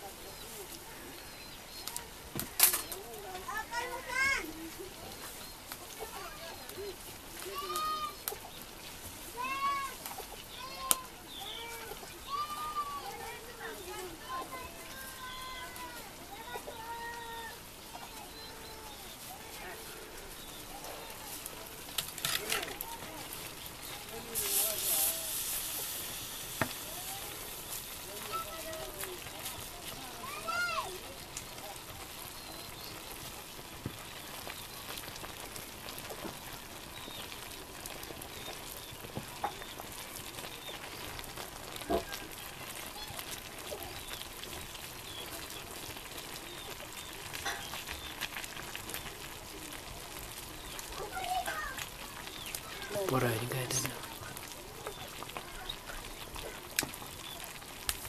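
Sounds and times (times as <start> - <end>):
faint voices: 0.0 - 58.0
greens sizzling in a wok: 0.0 - 58.0.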